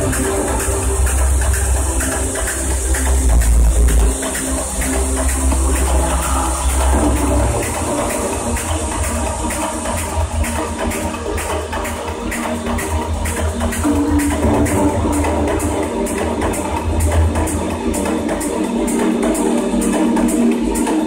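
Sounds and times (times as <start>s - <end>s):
loud techno music: 0.0s - 21.0s.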